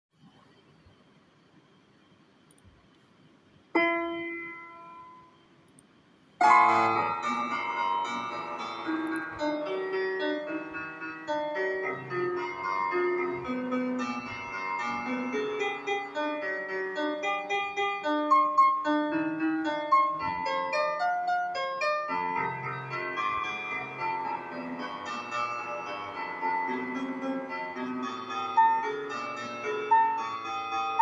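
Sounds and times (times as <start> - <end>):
piano chord ringing: 3.8 - 5.5, 6.4 - 31.0
fast classical piano piece: 6.6 - 31.0.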